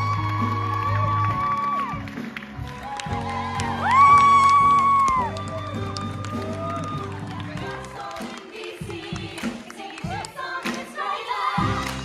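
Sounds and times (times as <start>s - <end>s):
instrumental accompaniment with bass: 0.0s - 7.8s.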